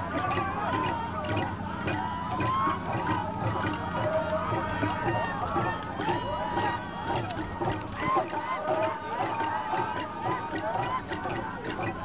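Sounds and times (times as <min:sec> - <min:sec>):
crowd calling out and chanting: 0:00.0 - 0:12.0.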